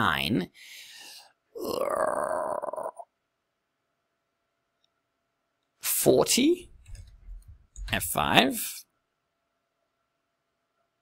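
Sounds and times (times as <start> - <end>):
short breath: 0.6 - 1.4
man's drawn-out hesitation sound: 7.8 - 8.8.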